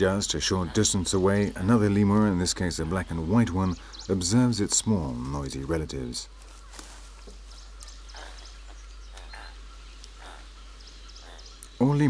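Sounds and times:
quiet forest background: 0.0 - 12.0
soft lemur calls: 0.0 - 12.0.

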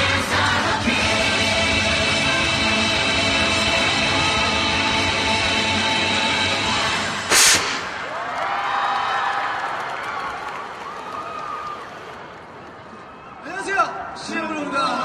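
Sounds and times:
stage music with held chords: 0.0 - 7.4
short loud blast: 7.3 - 8.1
crowd cheering: 7.7 - 15.0.

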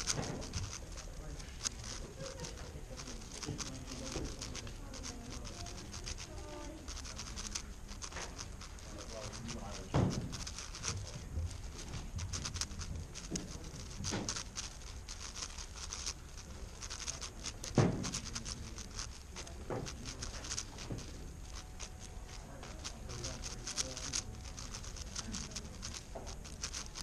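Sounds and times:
low room hum: 0.0 - 27.0
plastic puzzle cube clicking: 3.2 - 6.3, 6.9 - 8.6, 9.3 - 19.2, 22.7 - 27.0
puzzle cube plastic clicks: 22.7 - 27.0.

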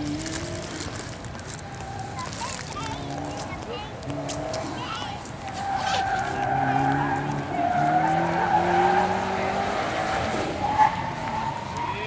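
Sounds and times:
tyre squeal: 4.3 - 12.0
car engine revving hard: 6.3 - 11.8.

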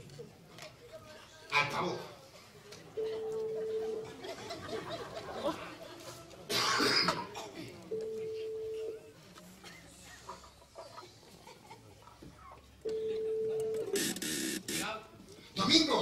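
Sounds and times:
loud cough: 6.5 - 7.8
telephone ringback tone: 8.0 - 9.0, 12.9 - 14.6.

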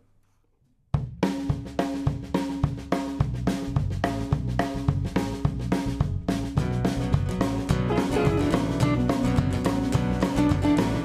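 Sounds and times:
drum kit beat: 1.0 - 11.0
bass guitar: 2.1 - 11.0
acoustic guitar: 6.6 - 11.0
electric guitars: 6.8 - 11.0.

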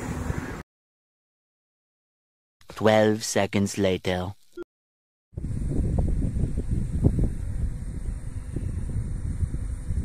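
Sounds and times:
wind buffeting microphone: 5.4 - 10.0.

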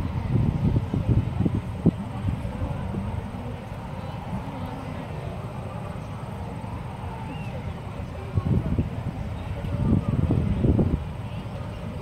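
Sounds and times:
wind on microphone: 0.0 - 3.6, 7.4 - 12.0
faint distant voices: 0.0 - 12.0.

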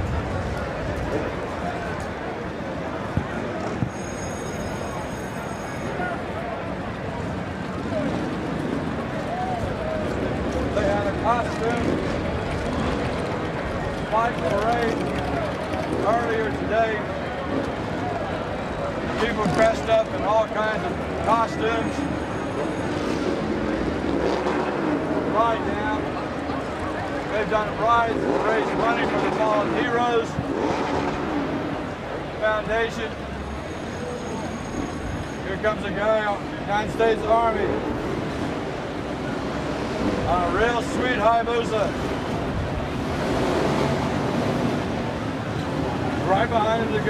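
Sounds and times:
crowd chatter: 0.0 - 47.0
motorcycle engines running: 0.0 - 47.0.

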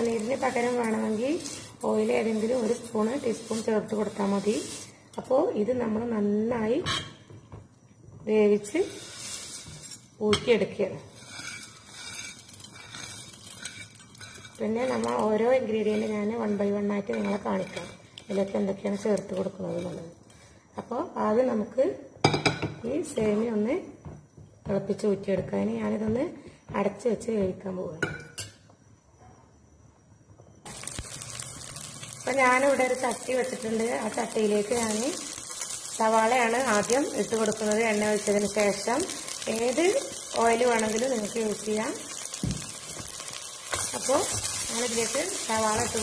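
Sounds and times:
shallots sizzling in hot oil: 0.0 - 7.5, 8.2 - 21.1, 30.6 - 46.0.

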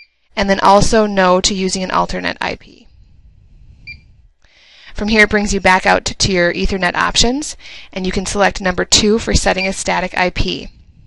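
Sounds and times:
keypad beep: 3.8 - 4.0.

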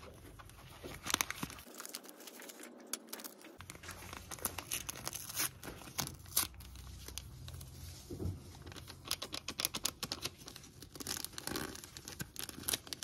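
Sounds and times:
paper sachets crinkling: 0.0 - 7.8, 8.6 - 13.0.

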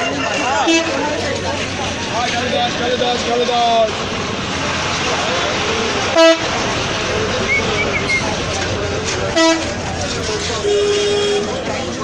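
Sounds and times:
crowd chatter: 0.0 - 12.0
street noise: 0.0 - 12.0
vehicle horn toots: 0.6 - 1.0, 6.2 - 6.5, 9.3 - 9.8, 10.5 - 11.7.

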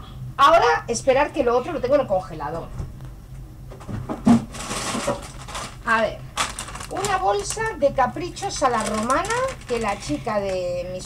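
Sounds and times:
low steady hum: 0.0 - 11.0
knocks in a freezer: 3.8 - 5.2
rustling: 4.4 - 10.7.

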